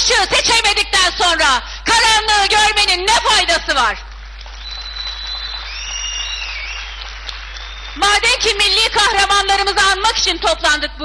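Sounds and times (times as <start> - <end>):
audience applauding: 4.1 - 8.6.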